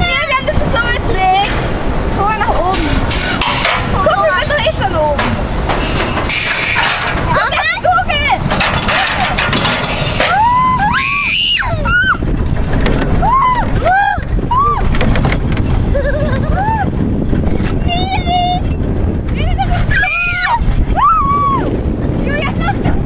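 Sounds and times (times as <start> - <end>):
wind rumble on microphone: 0.0 - 23.0
children squealing and whooping: 10.2 - 12.3, 13.2 - 14.9, 15.9 - 17.0, 19.8 - 21.8.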